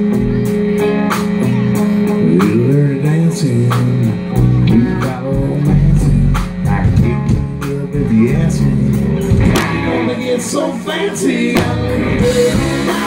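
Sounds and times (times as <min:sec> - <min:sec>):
live rock band: 0:00.0 - 0:13.0.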